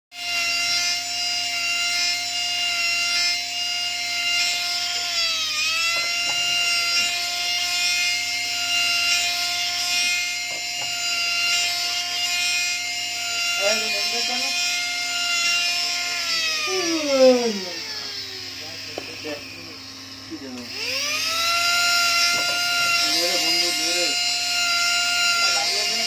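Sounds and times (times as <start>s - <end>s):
rotary handpiece whining and grinding: 0.1s - 26.0s.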